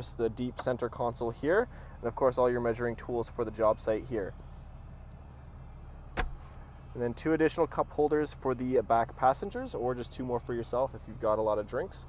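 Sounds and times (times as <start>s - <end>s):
low hum in car cab: 0.0s - 12.0s.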